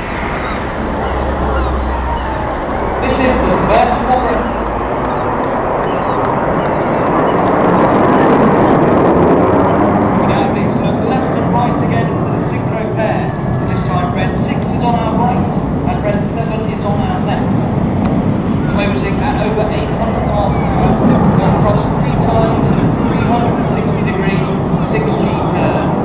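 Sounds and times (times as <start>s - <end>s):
jets roaring: 0.0s - 26.0s
people talking: 2.1s - 4.7s, 10.3s - 17.5s, 18.6s - 26.0s.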